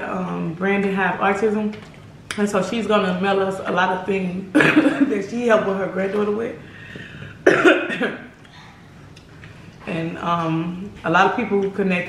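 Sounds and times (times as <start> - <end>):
person coughing: 4.5 - 5.1, 7.4 - 8.7.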